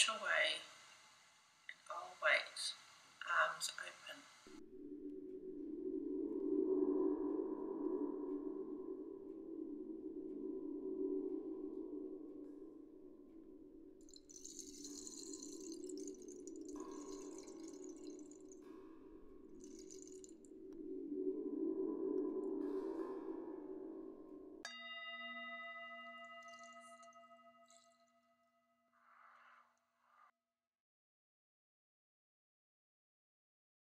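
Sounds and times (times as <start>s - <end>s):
low sustained drone: 1.8s - 28.0s
singing bowl ringing: 7.6s - 20.8s, 22.2s - 29.4s.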